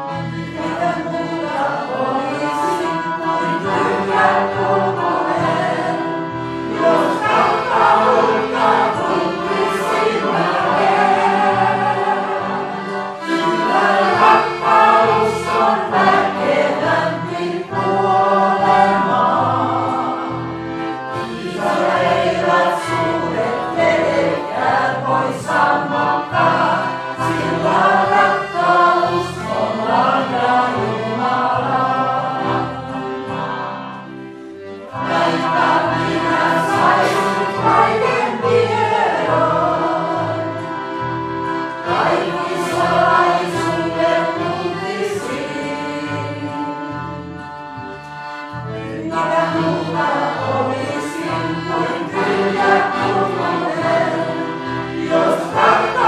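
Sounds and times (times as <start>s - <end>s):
congregation singing a hymn: 0.0s - 56.0s.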